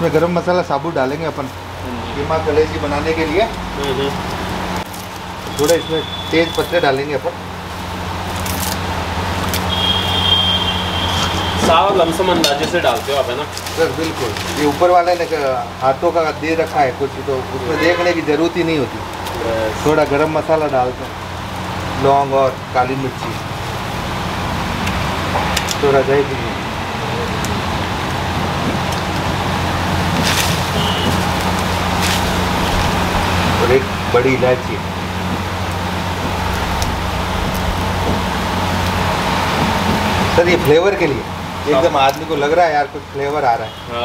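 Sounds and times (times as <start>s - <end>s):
onions frying in oil: 1.2s - 43.5s
thin high whistle: 5.5s - 7.0s, 9.7s - 12.3s, 30.8s - 31.2s
burner flame hum and rush: 18.9s - 42.4s.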